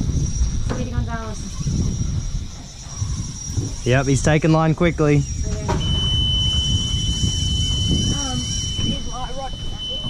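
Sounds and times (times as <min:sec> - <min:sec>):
low rumble: 0:00.0 - 0:10.0.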